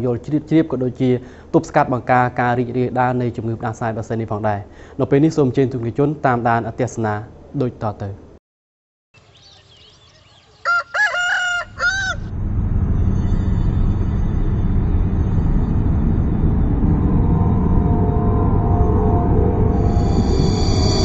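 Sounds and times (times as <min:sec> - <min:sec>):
faint bird chirps: 0:09.2 - 0:10.8
rooster crowing: 0:10.3 - 0:12.3
low droning background music: 0:12.0 - 0:21.0.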